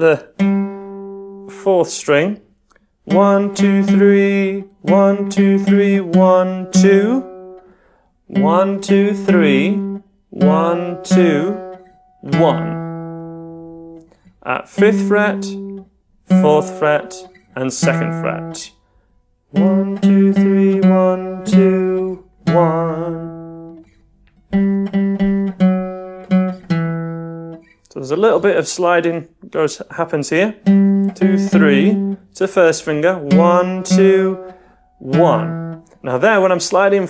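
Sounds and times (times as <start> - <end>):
acoustic guitar picking riff: 0.0 - 2.3, 3.0 - 29.4, 30.0 - 37.0
person singing along: 3.0 - 7.6, 8.3 - 13.2, 14.4 - 18.8, 19.5 - 23.9, 28.2 - 37.0.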